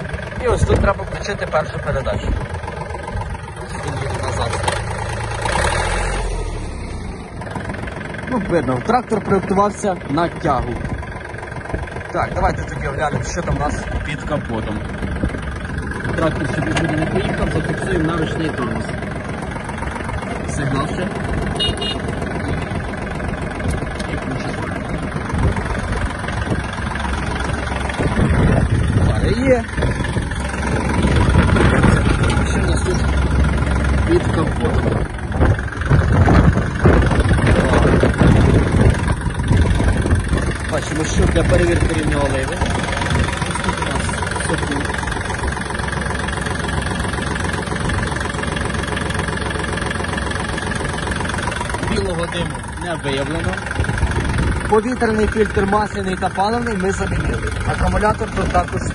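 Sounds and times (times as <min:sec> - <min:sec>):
tractor diesel engine idling: 0:00.0 - 0:58.9.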